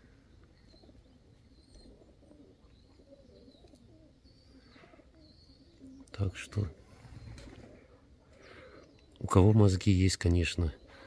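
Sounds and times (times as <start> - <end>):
pigeons cooing: 0.0 - 11.0
small birds chirping: 0.0 - 11.0.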